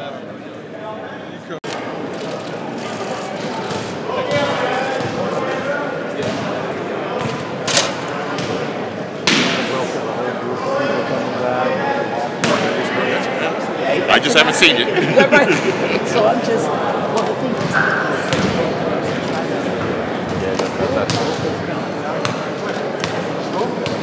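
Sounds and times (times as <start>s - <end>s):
people chattering: 0.0s - 24.0s.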